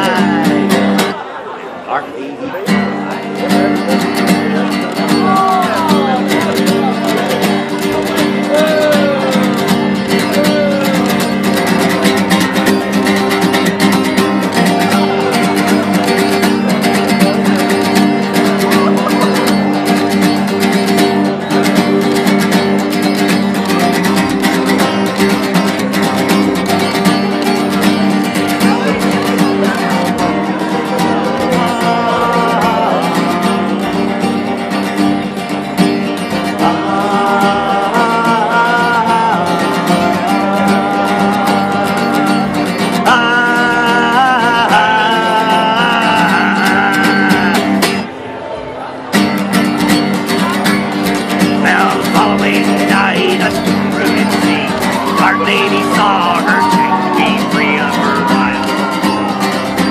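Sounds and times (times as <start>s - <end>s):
acoustic guitar strummed rapidly: 0.0s - 1.8s, 2.5s - 59.9s.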